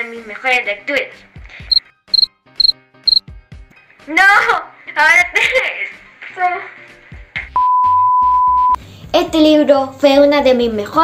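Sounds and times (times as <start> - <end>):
short high beeps: 2.2 - 3.2.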